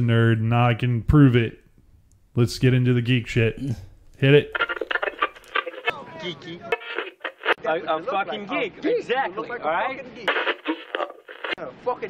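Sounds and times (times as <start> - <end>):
man talking: 0.0 - 1.6, 2.4 - 12.0
tinny voice through telephone: 4.2 - 7.6, 10.3 - 11.6.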